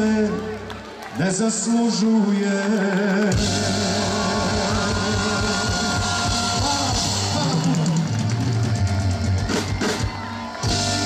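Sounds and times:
live band playing: 0:03.2 - 0:11.0.

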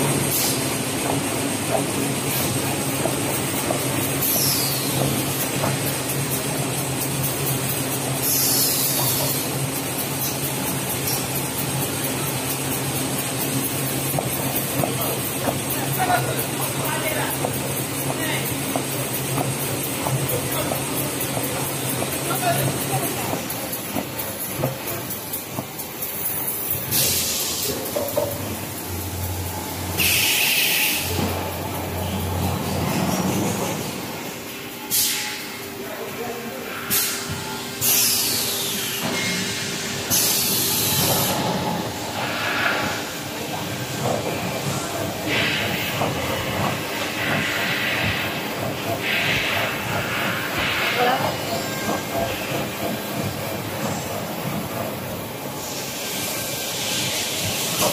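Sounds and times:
machine hissing: 0:00.0 - 0:57.9
loud hiss: 0:08.2 - 0:09.5, 0:26.4 - 0:27.8, 0:29.9 - 0:31.2, 0:36.8 - 0:43.2, 0:55.5 - 0:57.9.

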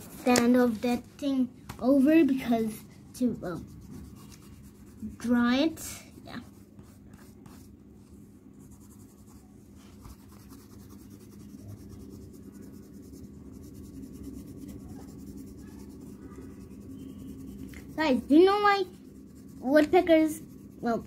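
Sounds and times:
pencil scratching on paper: 0:03.3 - 0:07.8, 0:08.6 - 0:21.0.

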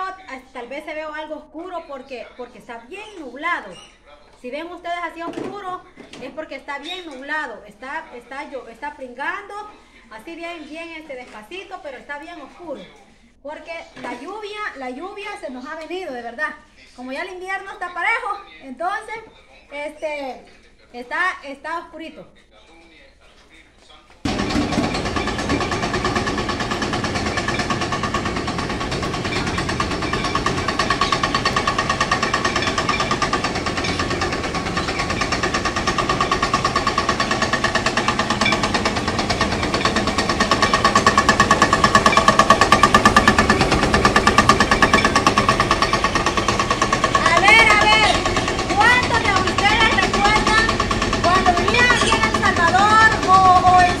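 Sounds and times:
corn mill humming: 0:24.3 - 0:54.0
fast even rattle: 0:24.3 - 0:54.0.

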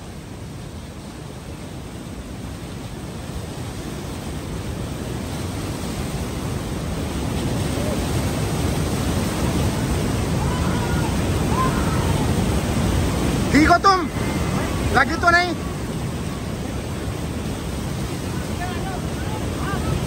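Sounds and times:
river rapids roaring: 0:00.0 - 0:20.0.

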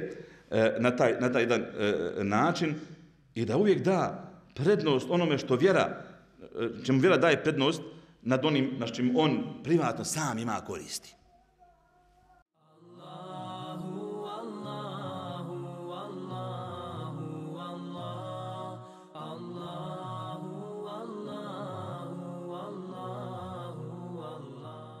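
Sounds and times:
chanted vocal music: 0:12.6 - 0:25.0.

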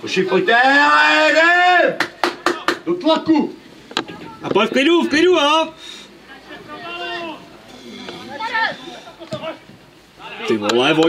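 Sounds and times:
man shouting: 0:00.2 - 0:02.0, 0:06.7 - 0:07.5, 0:08.3 - 0:09.6.

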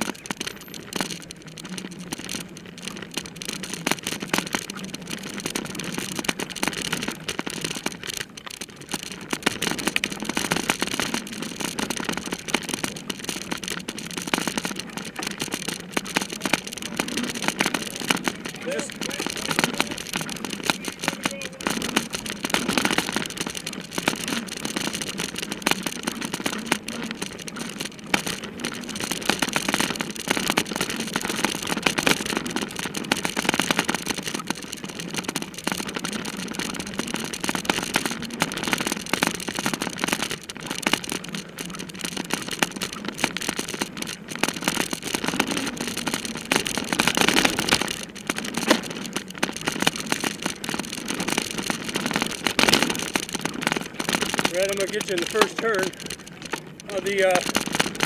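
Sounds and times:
bike clattering and rattling: 0:00.0 - 0:58.0.

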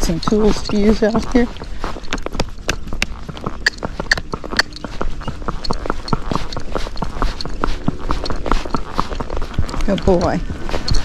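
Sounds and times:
hooves clopping on paved road: 0:00.0 - 0:11.0.

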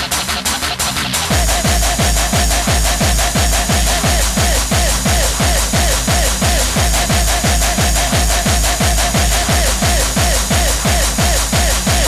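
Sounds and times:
hardcore techno kick drum: 0:00.0 - 0:12.0
repeating synth riff: 0:01.2 - 0:12.0.

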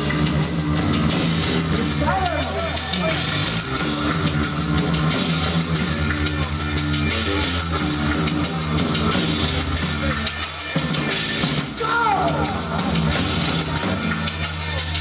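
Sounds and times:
drum kit with cymbals: 0:00.0 - 0:15.0
electric bass guitar: 0:00.0 - 0:15.0.

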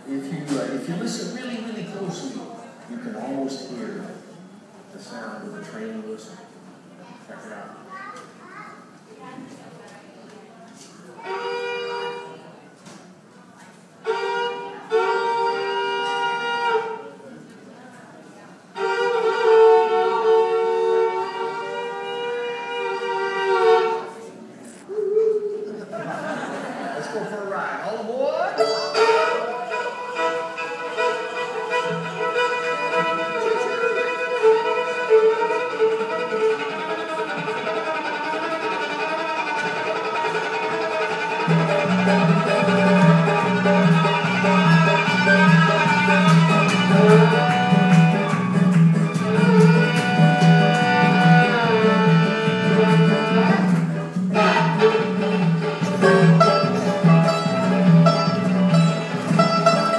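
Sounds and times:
fiddle imitating train whistle: 0:11.2 - 0:12.4, 0:14.0 - 0:17.1, 0:18.8 - 0:24.2, 0:28.6 - 0:59.9
fast bluegrass fiddle run: 0:14.0 - 0:17.0, 0:18.7 - 0:24.2, 0:28.6 - 0:59.9
upright bass plucked notes: 0:41.5 - 0:59.9.

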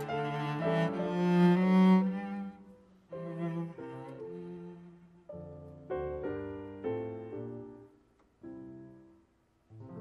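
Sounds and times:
cello bowed notes: 0:00.0 - 0:06.0.

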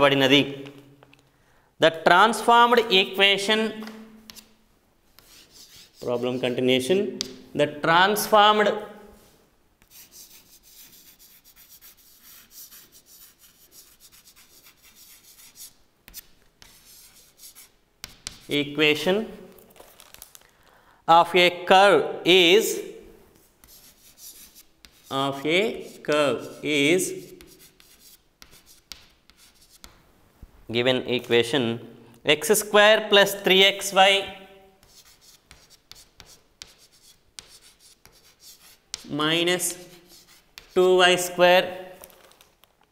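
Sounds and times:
chalk scratching on chalkboard: 0:04.2 - 0:07.5, 0:09.2 - 0:18.6, 0:23.4 - 0:30.0, 0:34.8 - 0:41.4.

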